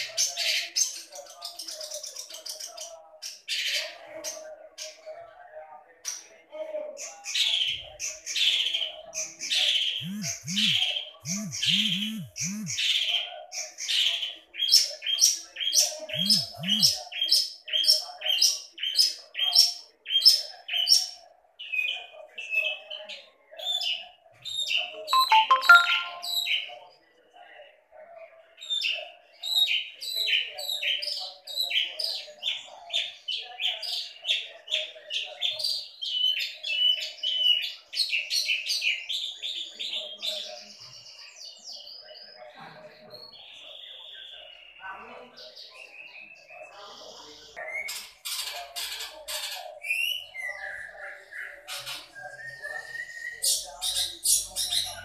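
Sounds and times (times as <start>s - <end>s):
shrike singing and chattering: 7.2s - 22.6s, 49.8s - 55.0s.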